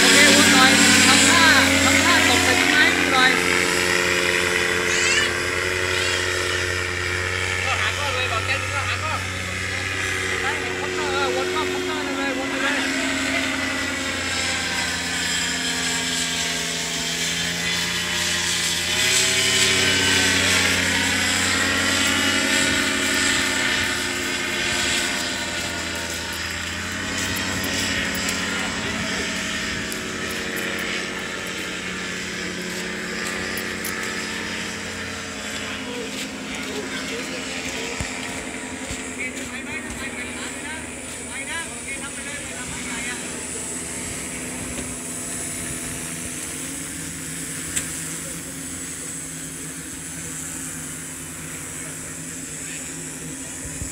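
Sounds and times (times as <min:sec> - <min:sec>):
paramotor engine droning overhead: 0:00.0 - 0:53.9.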